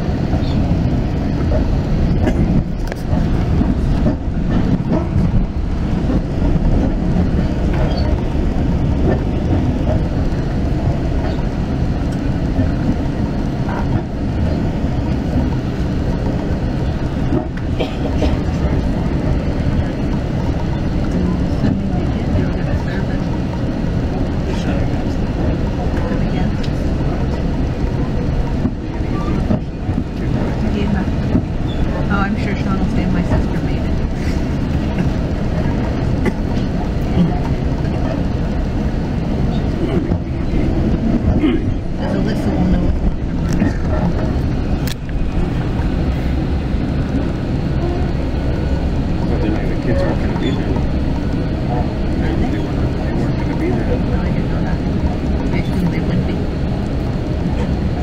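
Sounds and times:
train rumble inside coach: 0:00.0 - 0:58.0.

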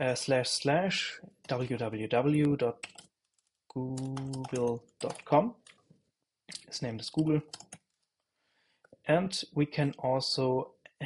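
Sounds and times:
computer keyboard typing: 0:02.7 - 0:05.9, 0:07.2 - 0:08.1.

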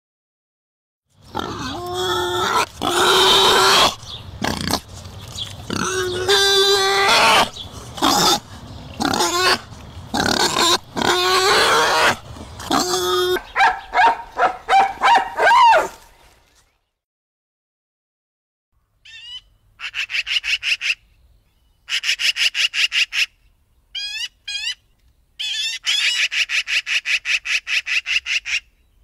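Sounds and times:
animal squealing calls: 0:01.4 - 0:04.7, 0:05.7 - 0:16.0, 0:25.4 - 0:28.7.

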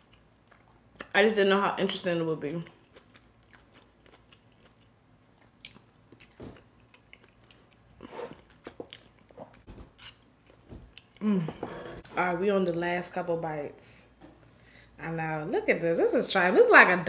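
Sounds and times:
person chewing food: 0:00.0 - 0:01.1, 0:02.6 - 0:11.3
person humming: 0:11.2 - 0:11.8.

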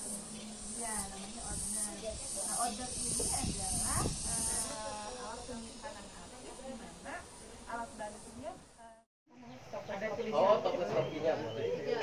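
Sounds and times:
high-pitched pulsing hiss: 0:00.0 - 0:08.8
woman talking indistinctly: 0:00.7 - 0:09.6.

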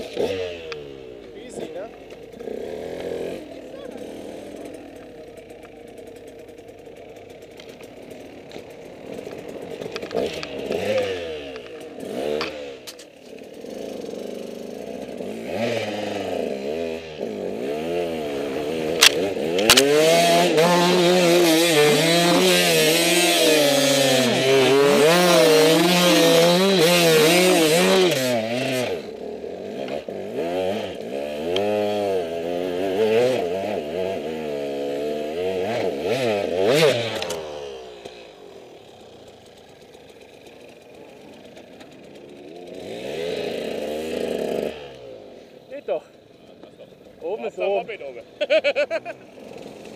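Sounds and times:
motorcycle engine revving: 0:00.0 - 0:49.9.

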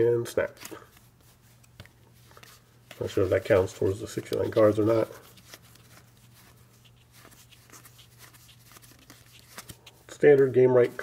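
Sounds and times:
cards being thumbed through: 0:07.2 - 0:11.0.

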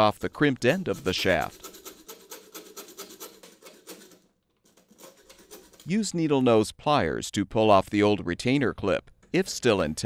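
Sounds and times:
hacksaw cutting metal: 0:00.0 - 0:05.9.

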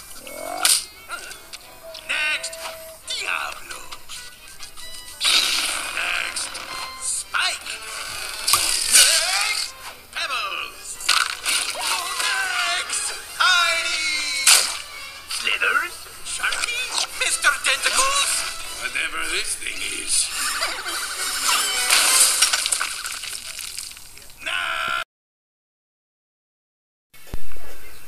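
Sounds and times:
background music: 0:00.0 - 0:23.2
slapstick sharp cracks: 0:00.6 - 0:00.9, 0:05.2 - 0:06.9, 0:08.4 - 0:10.0, 0:11.0 - 0:13.2, 0:14.0 - 0:15.6, 0:21.4 - 0:23.0
cartoon creature calls and squeals: 0:05.2 - 0:10.5, 0:11.4 - 0:14.7, 0:20.3 - 0:22.4, 0:24.4 - 0:25.0.

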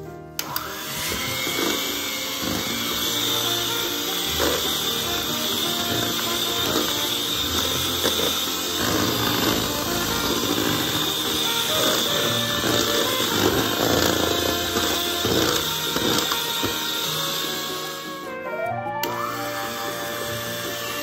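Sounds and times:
background music: 0:00.0 - 0:21.0
electric hand mixer whining: 0:00.0 - 0:21.0.

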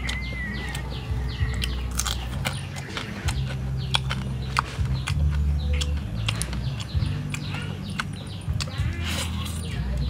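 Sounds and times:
bird wavering call: 0:00.0 - 0:01.8
crackles and crunches of eating: 0:00.0 - 0:10.0.

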